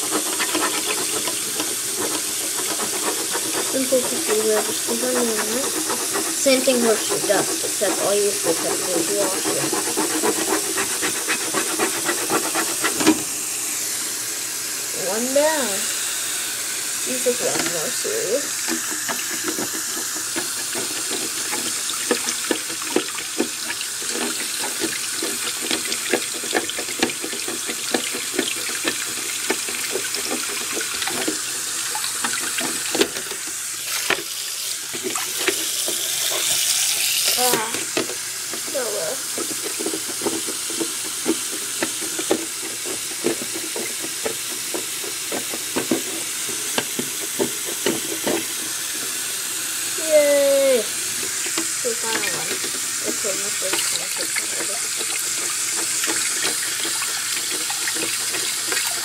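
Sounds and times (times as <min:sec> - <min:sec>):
tap running into sink: 0:17.2 - 0:49.2, 0:50.1 - 0:59.0.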